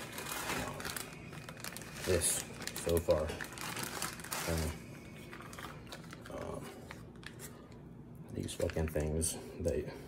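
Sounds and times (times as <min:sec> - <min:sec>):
plastic bag crinkling: 0:00.0 - 0:07.8.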